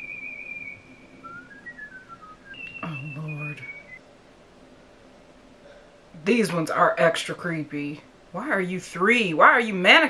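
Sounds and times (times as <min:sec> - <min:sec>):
high whistled tune: 0:00.0 - 0:04.0.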